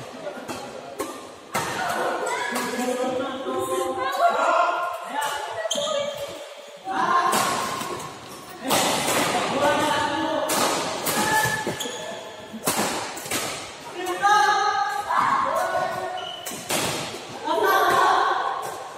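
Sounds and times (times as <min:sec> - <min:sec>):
rackets hitting shuttlecock: 0:07.3 - 0:11.9, 0:14.9 - 0:18.8.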